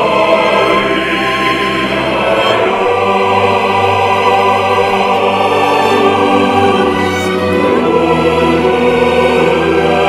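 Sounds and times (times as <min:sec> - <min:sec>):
male choir singing chords: 0:00.0 - 0:10.0.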